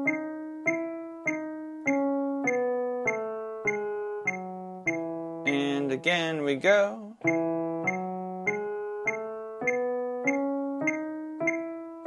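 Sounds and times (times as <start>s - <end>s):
piano playing rising scale notes: 0.0s - 6.5s, 7.2s - 12.0s.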